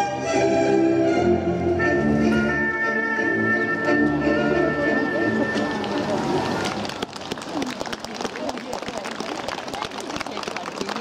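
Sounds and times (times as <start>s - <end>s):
shoes tapping on cobblestones: 5.2s - 11.0s.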